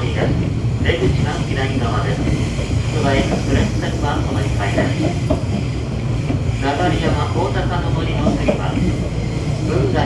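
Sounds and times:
train wheels rumbling: 0.0 - 10.0.

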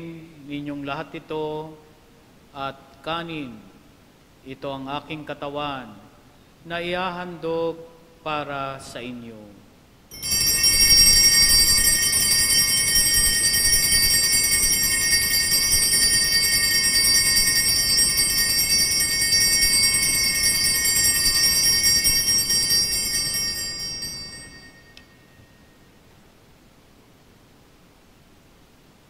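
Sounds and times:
altar bells jingling: 10.1 - 25.6.

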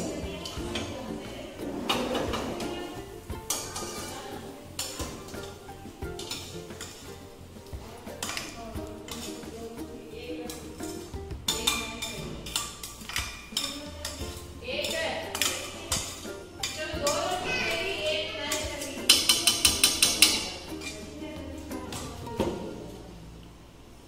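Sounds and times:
metal spoon scraping frying pan: 0.0 - 9.7, 10.3 - 22.2
background music: 0.0 - 24.0.

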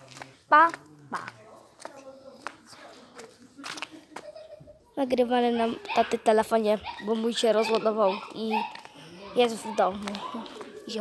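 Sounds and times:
footsteps: 0.0 - 4.8, 5.6 - 11.0
faint voices: 0.0 - 11.0.

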